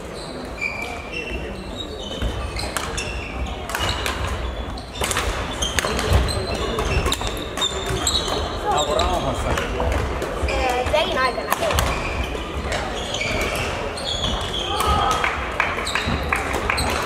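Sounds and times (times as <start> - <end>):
racket hitting shuttlecock: 3.7 - 8.5.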